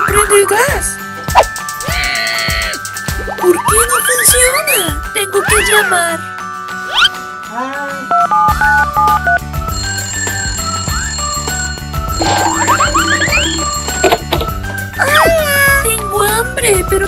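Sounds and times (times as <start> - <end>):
playful background music: 0.0 - 17.0
rising electronic chirps: 12.2 - 14.1
toy telephone ringing: 12.2 - 14.3.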